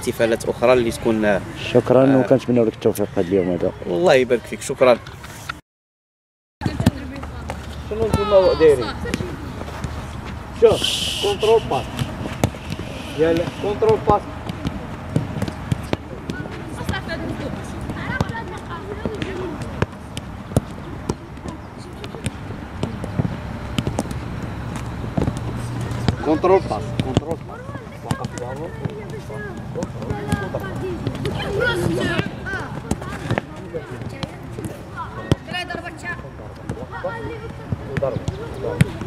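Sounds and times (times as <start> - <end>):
foot kicking football: 9.0 - 17.0
coach calling: 10.5 - 14.3
person shouting: 10.7 - 12.0
children's voices: 27.5 - 33.7.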